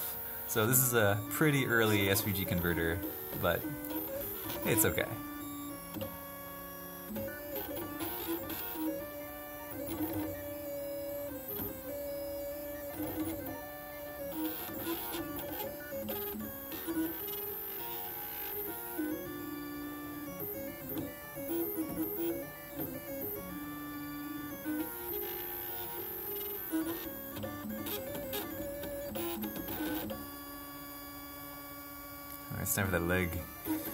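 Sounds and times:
stepper motors whining: 0.0s - 13.4s.

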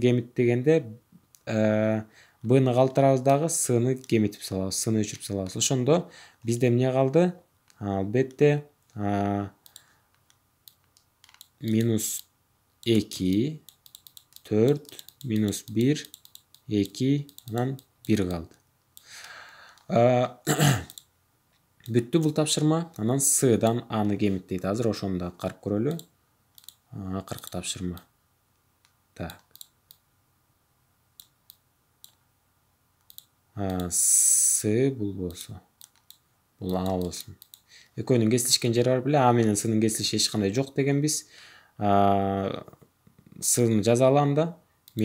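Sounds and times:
computer mouse clicks: 9.6s - 18.4s, 20.9s - 21.1s, 25.9s - 28.1s, 28.8s - 30.0s, 31.2s - 32.2s, 33.0s - 33.9s, 35.3s - 37.7s.

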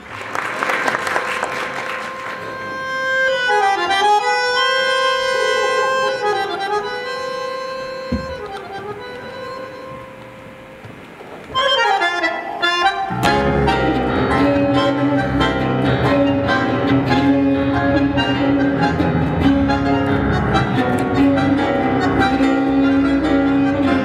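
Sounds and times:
bandoneon tango music: 1.0s - 24.0s.

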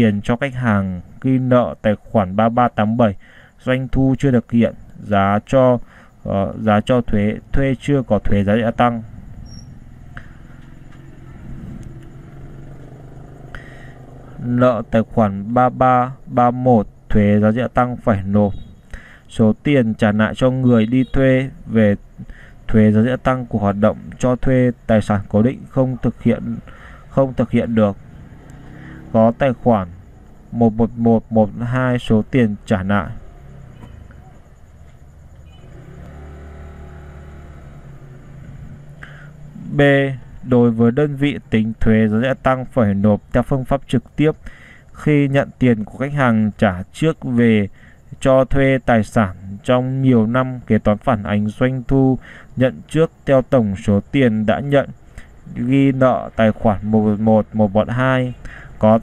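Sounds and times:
faint steady hum: 0.0s - 59.0s
low steady hum and rumble: 6.1s - 20.8s.

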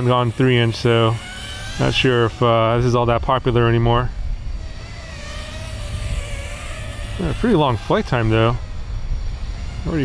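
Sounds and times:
quadcopter motors whining: 0.0s - 10.0s
low rumble: 2.2s - 10.0s.

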